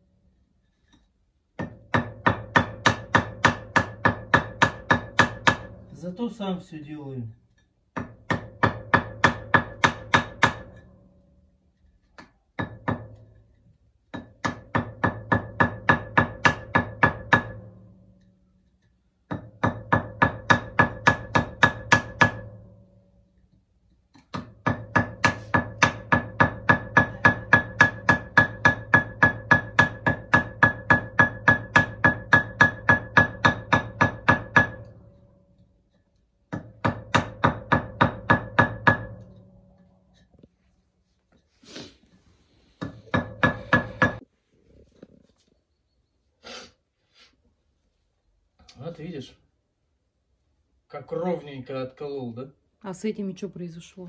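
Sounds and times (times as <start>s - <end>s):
hammer striking steel chisel: 0.7s - 6.1s, 7.6s - 11.1s, 12.1s - 13.5s, 14.1s - 23.5s, 24.1s - 40.3s, 42.8s - 44.2s.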